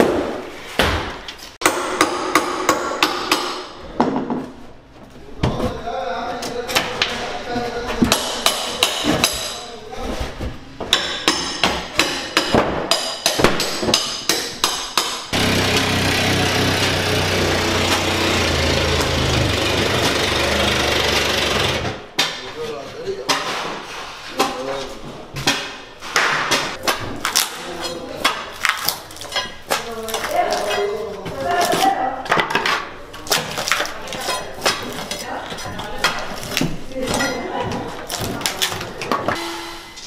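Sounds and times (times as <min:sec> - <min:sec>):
loud machine noise: 0:15.3 - 0:22.0
drywall being torn out: 0:15.4 - 0:22.0.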